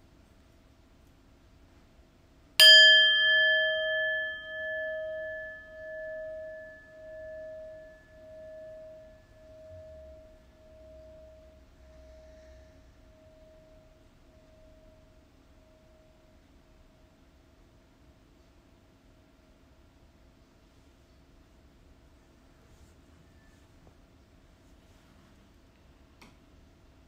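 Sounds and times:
singing bowl struck with mallet: 2.6s - 14.9s
singing bowl ringing: 2.6s - 17.2s.

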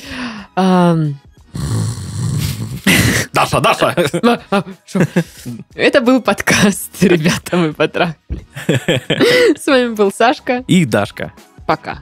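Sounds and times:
person imitating snoring: 1.4s - 3.3s.

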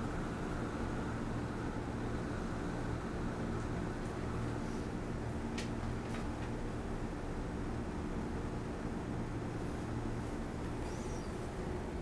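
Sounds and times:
low room hum: 0.0s - 12.0s
faint high squeak: 10.8s - 11.4s.

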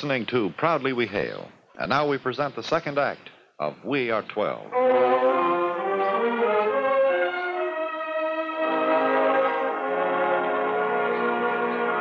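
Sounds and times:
orchestral sustained chord: 4.7s - 12.0s.

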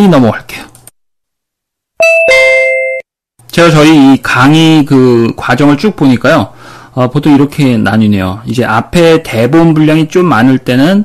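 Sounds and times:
two-note electronic chime: 2.0s - 3.0s.

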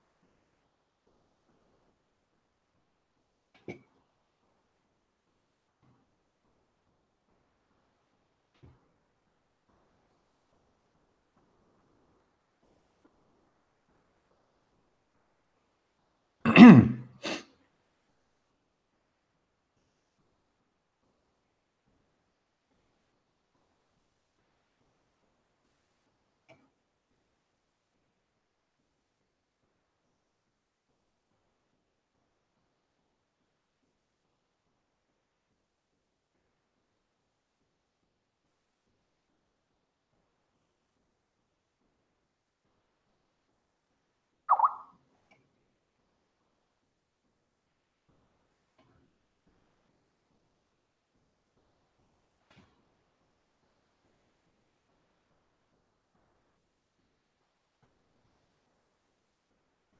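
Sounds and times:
man clearing his throat: 16.5s - 17.4s
electronic bloop: 44.5s - 44.9s.

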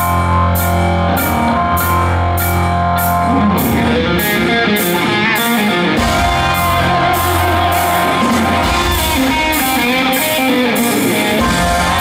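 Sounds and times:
electric guitar: 0.0s - 12.0s
keyboards: 0.0s - 12.0s.

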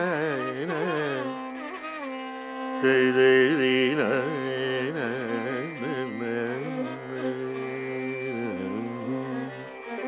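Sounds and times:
man singing ornamented phrases: 0.0s - 1.4s, 2.7s - 9.8s.

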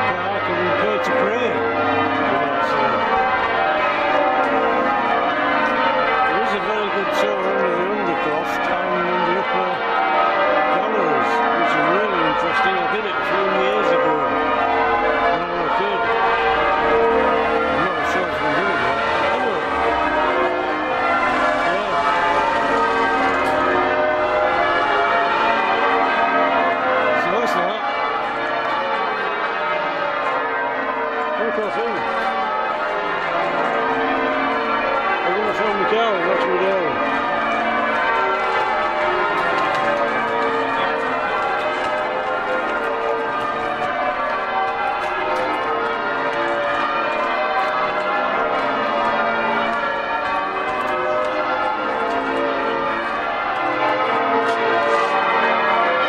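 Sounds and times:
church bells change ringing: 0.0s - 56.0s.

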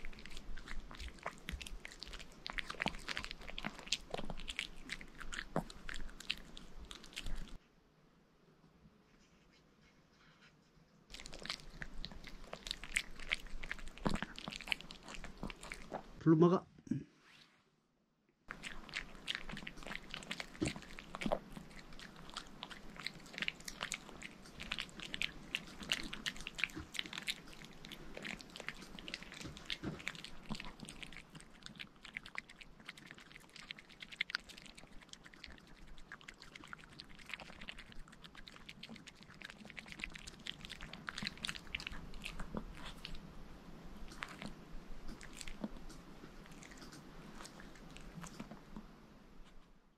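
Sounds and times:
dog gnawing chew stick: 0.0s - 7.6s, 11.1s - 16.2s, 18.5s - 43.2s, 44.0s - 49.7s.

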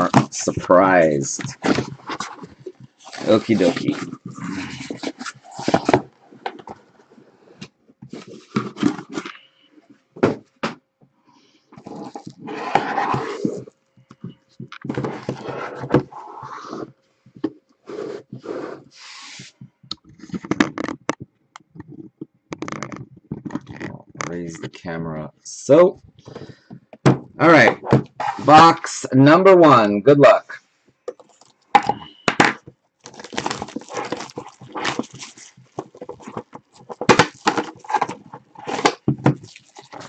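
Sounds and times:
cardboard rustling and scraping: 0.0s - 10.6s, 11.8s - 21.1s, 26.2s - 28.8s, 31.1s - 40.0s
boxes knocking on desk: 31.8s - 32.6s.

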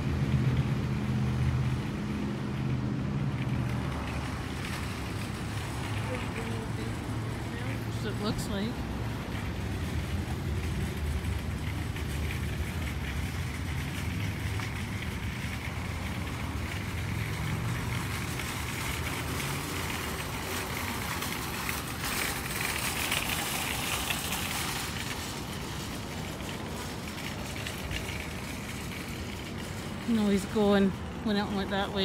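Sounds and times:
vehicle engine rumbling: 0.0s - 32.0s.

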